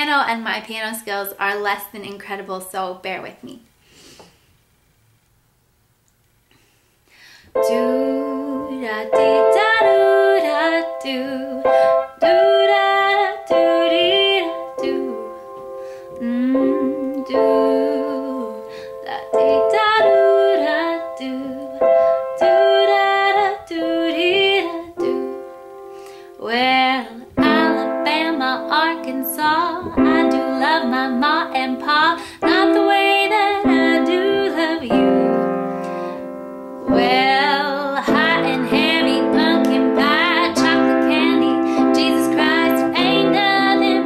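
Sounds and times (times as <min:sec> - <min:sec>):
woman singing: 0:07.6 - 0:15.5, 0:16.1 - 0:25.6, 0:26.3 - 0:35.6, 0:36.8 - 0:44.0
piano accompaniment: 0:07.6 - 0:44.0.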